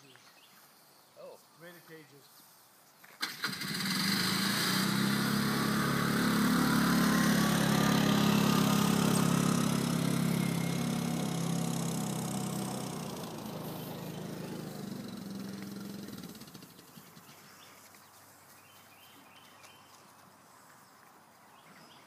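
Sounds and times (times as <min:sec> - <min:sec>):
engine running: 0:03.2 - 0:17.7.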